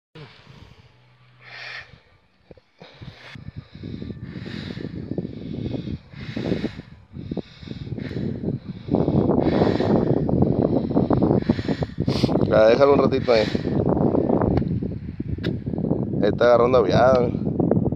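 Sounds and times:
wind rumble on microphone: 0:00.2 - 0:17.9.

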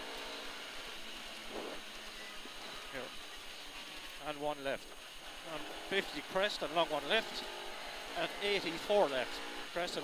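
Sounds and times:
car engine drone at speed: 0:00.0 - 0:10.0.

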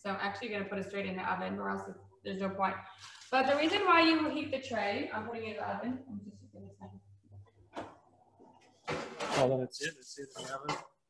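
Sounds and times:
metal tray scraping on oven rack: 0:08.9 - 0:09.6.

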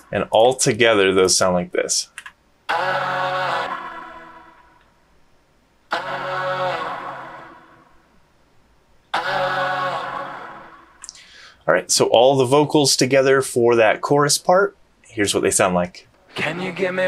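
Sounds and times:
harmony backing vocals singing: 0:02.7 - 0:04.9, 0:05.9 - 0:08.1, 0:09.1 - 0:11.2, 0:16.3 - 0:17.0.

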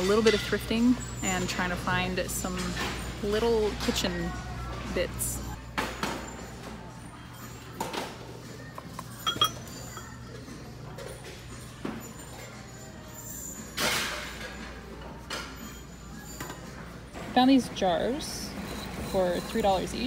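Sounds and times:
faint background music: 0:00.0 - 0:20.0
kitchenware clinking: 0:08.9 - 0:10.3.

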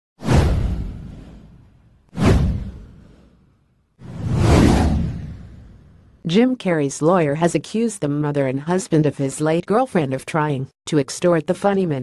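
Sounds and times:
whoosh sound effect: 0:02.2 - 0:03.4, 0:04.0 - 0:06.0.

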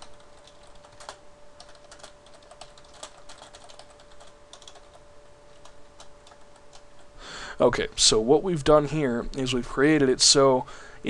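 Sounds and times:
computer keyboard typing: 0:00.0 - 0:07.1.

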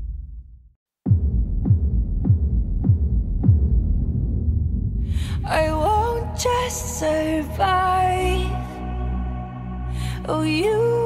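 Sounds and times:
deep electronic bass booms: 0:00.0 - 0:09.9.

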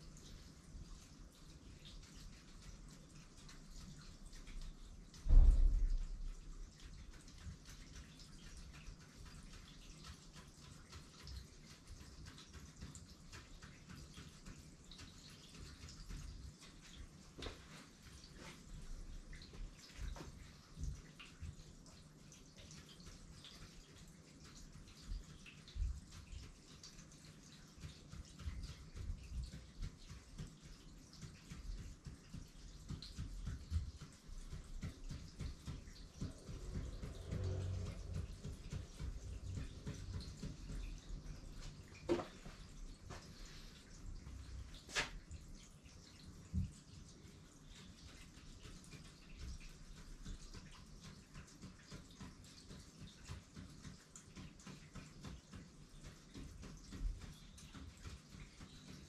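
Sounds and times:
low thump: 0:05.3 - 0:06.1
ink tool tapping on paper: 0:24.9 - 0:41.3.

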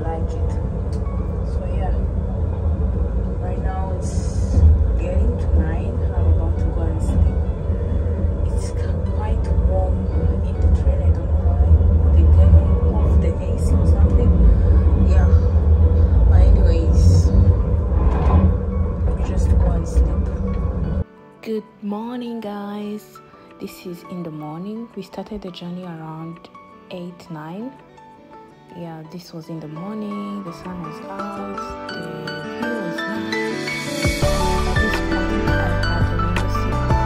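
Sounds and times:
train running low rumble: 0:00.0 - 0:21.0
background music: 0:00.0 - 0:37.0.

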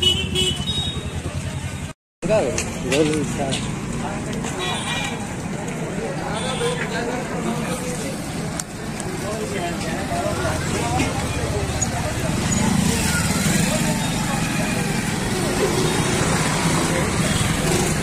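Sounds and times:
motorcycle engines passing: 0:00.0 - 0:18.0
babble of people talking: 0:00.7 - 0:18.0.

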